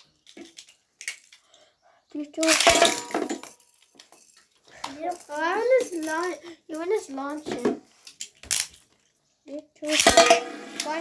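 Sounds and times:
toy parts clattering: 0.0s - 9.2s, 9.8s - 11.0s.

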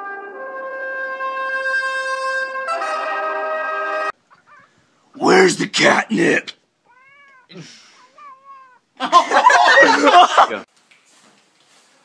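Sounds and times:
cat meowing: 4.3s - 4.7s, 6.8s - 8.9s.

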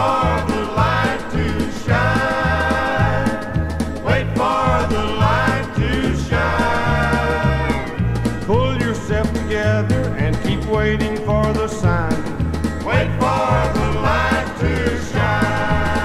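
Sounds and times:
bass stepping through notes: 0.0s - 16.0s
country gospel instrumental: 0.0s - 16.0s.

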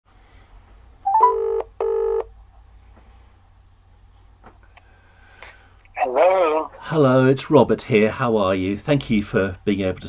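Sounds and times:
telephone ringing tone: 1.1s - 2.3s.

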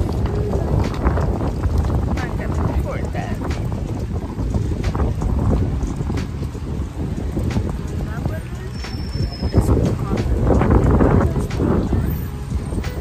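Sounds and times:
faint voices: 0.0s - 6.3s, 7.0s - 13.0s
wind buffeting microphone: 0.0s - 13.0s.

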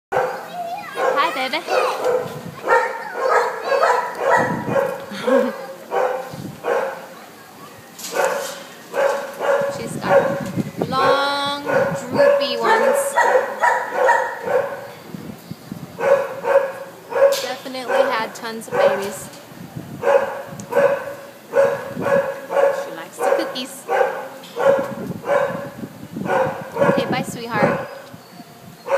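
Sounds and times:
dogs barking: 0.1s - 7.4s, 8.1s - 15.1s, 16.0s - 19.3s, 20.0s - 28.9s.

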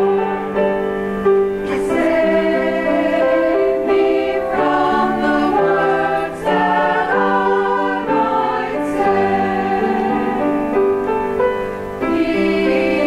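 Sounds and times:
choir singing in harmony: 0.0s - 13.0s.

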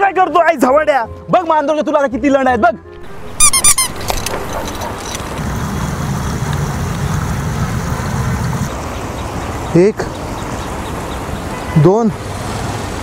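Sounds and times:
high-pitched squeaks: 3.0s - 5.4s.

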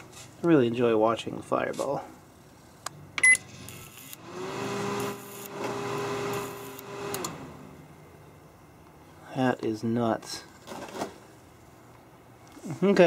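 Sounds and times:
microwave hum: 2.8s - 9.0s
keypad beep: 3.2s - 3.4s
high-voltage arcing hiss: 5.0s - 5.6s, 6.3s - 6.9s.

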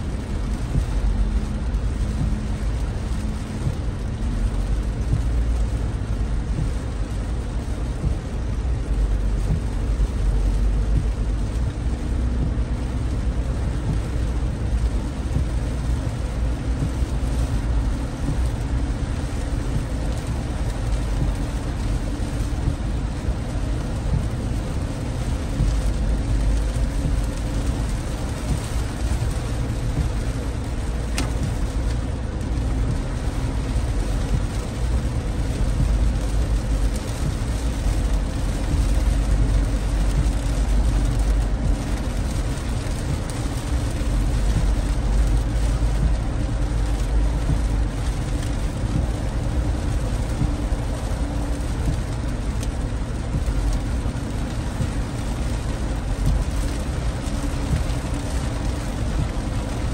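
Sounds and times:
rain hitting car windshield: 0.0s - 59.9s
tyres rumbling on wet road: 0.0s - 59.9s.

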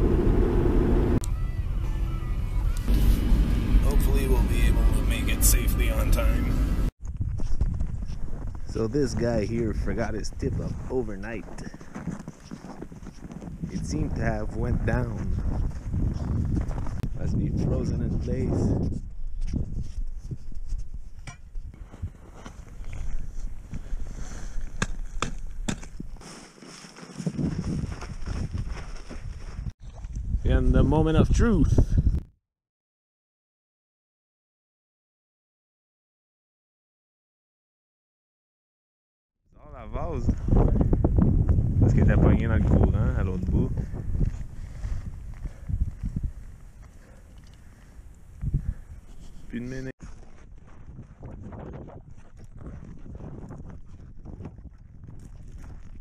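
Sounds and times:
car road and engine rumble: 0.0s - 6.9s
low wind rumble: 0.0s - 26.2s, 39.6s - 49.6s
footsteps crunching in snow: 7.2s - 17.0s, 18.9s - 29.8s, 49.1s - 56.0s
axe chopping ice: 24.8s - 26.0s.

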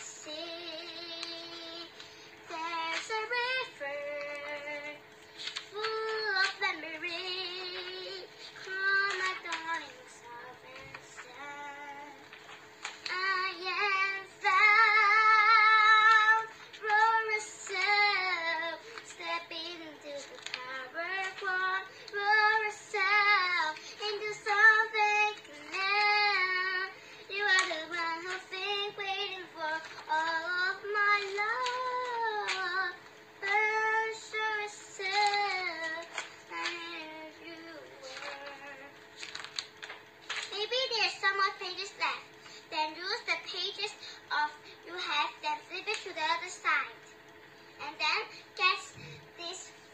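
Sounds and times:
girl singing: 0.0s - 39.4s, 40.4s - 47.1s, 47.8s - 49.9s
book pages rustling: 0.4s - 26.8s, 27.4s - 33.9s, 34.8s - 41.5s.

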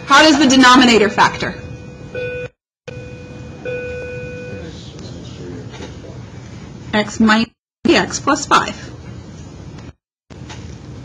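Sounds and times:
steady pitched tone: 0.0s - 5.2s.

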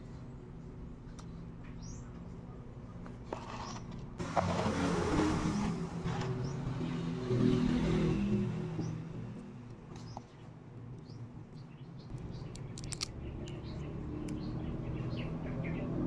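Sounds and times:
vehicle engine passing by: 4.2s - 9.7s, 12.1s - 16.0s.

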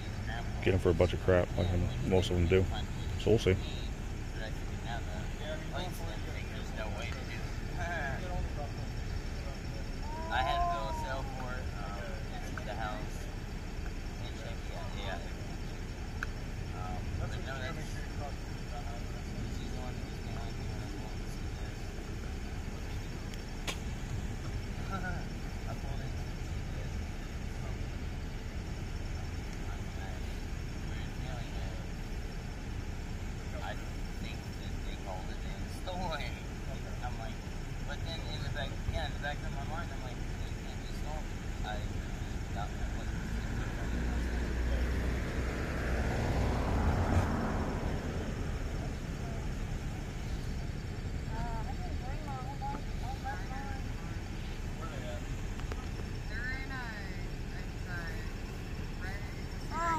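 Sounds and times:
car passing: 0.0s - 59.9s
indistinct distant voices: 0.0s - 59.9s
steady low rumble: 0.0s - 59.9s.

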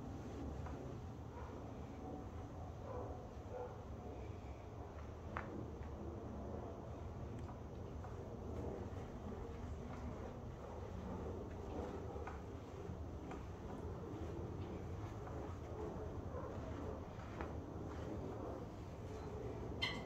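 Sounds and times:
low hum of room noise: 0.0s - 20.0s.

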